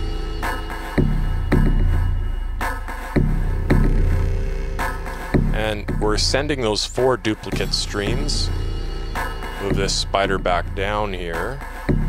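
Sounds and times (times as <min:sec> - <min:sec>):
deep bass hits: 0:00.0 - 0:02.6, 0:03.2 - 0:06.6, 0:07.5 - 0:11.0
low synth drone: 0:00.0 - 0:02.6, 0:03.2 - 0:06.0, 0:07.6 - 0:10.8.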